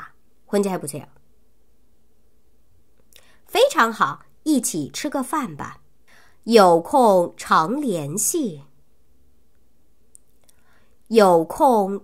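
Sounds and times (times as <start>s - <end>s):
faint steady hiss: 0.0s - 12.0s
soft breath: 3.1s - 3.5s, 6.0s - 6.5s, 10.4s - 11.0s.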